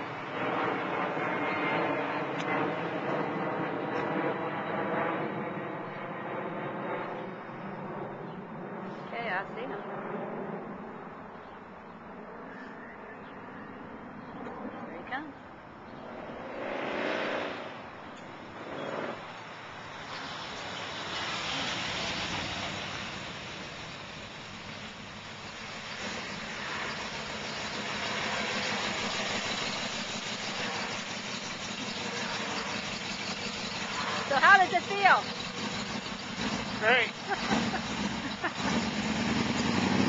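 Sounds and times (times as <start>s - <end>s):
truck engine approaching: 15.9s - 40.0s.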